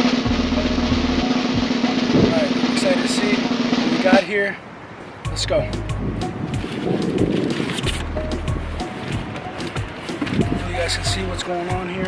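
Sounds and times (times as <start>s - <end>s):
snare drum roll: 0.0s - 4.5s.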